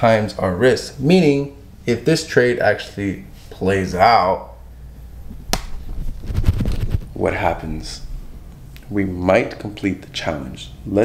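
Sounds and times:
camera handling noise: 5.4 - 7.0
sharp click: 5.5 - 5.8.

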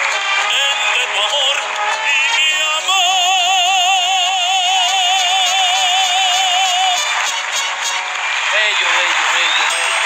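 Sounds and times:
musical accompaniment: 0.0 - 10.0
man singing long high note: 0.4 - 7.1.

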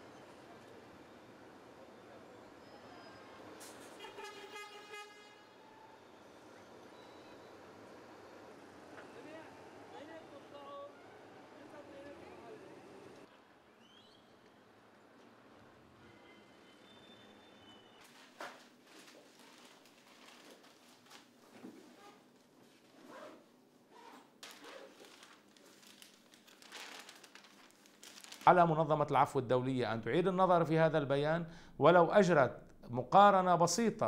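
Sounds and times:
faint background ambience: 0.0 - 34.0
vehicle horn: 3.7 - 6.0.

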